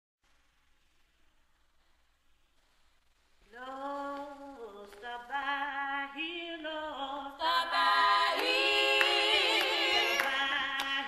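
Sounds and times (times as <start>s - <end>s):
women's vocal group singing: 3.6s - 11.0s.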